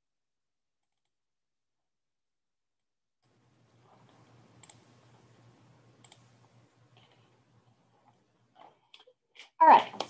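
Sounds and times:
low steady hum: 0:03.2 - 0:09.0
computer mouse clicks: 0:03.9 - 0:05.3, 0:05.9 - 0:07.3.

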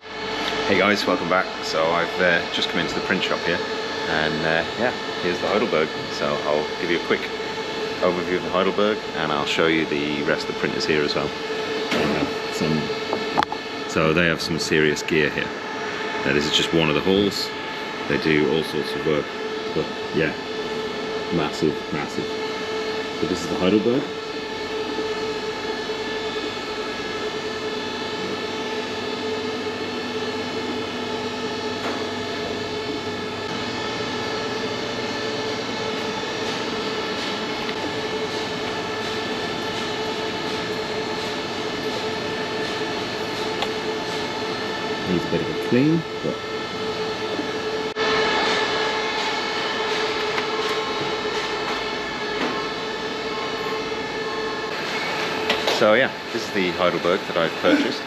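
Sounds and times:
printing machinery droning: 0:00.0 - 0:58.0.

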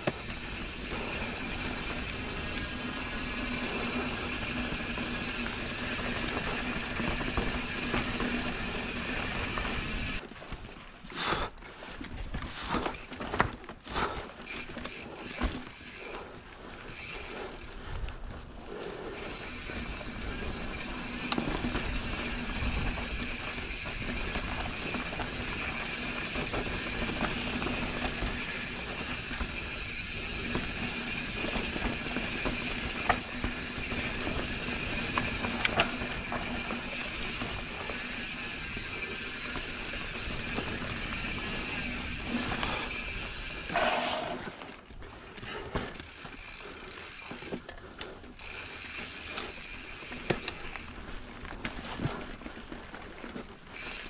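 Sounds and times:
bicycle freehub buzzing: 0:00.0 - 0:10.2, 0:13.9 - 0:17.9, 0:18.6 - 0:52.2, 0:53.2 - 0:54.0
knobby tyres rumbling on dirt: 0:00.0 - 0:54.0.

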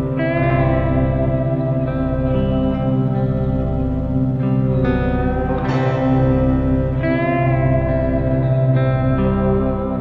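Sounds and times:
ringing guitar chords: 0:00.0 - 0:10.0
steady low drone: 0:00.0 - 0:10.0.

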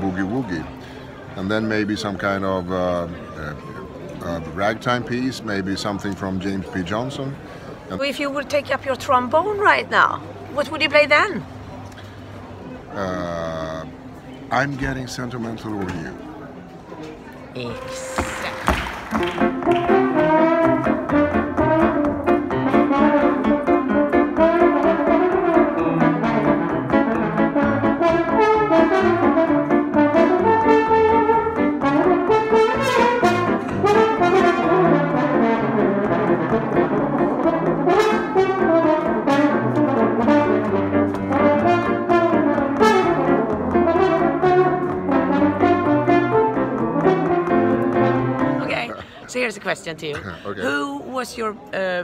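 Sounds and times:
piano accompaniment: 0:17.8 - 0:48.8
trombone playing jazz melody: 0:17.8 - 0:48.8.

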